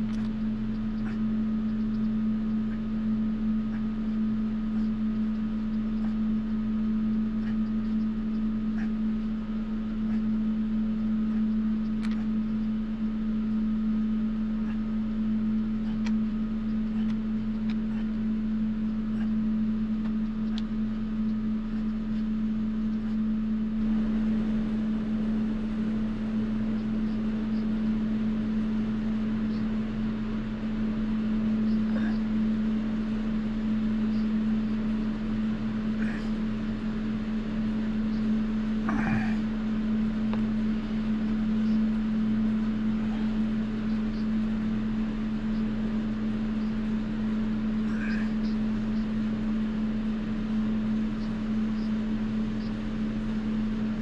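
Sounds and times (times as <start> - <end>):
low mechanical hum: 0.0 - 54.0.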